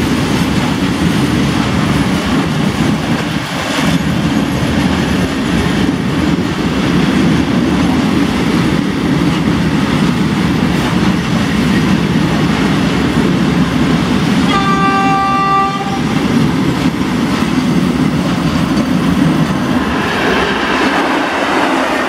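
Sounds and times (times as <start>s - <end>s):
freight train wheels rumbling on rails: 0.0s - 22.0s.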